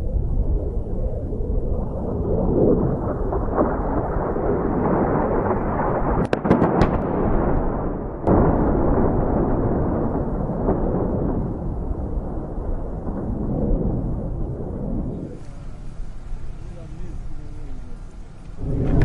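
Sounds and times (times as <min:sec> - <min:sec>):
distant explosions rumbling: 0:00.0 - 0:19.0
sharp cracks: 0:03.6 - 0:16.6.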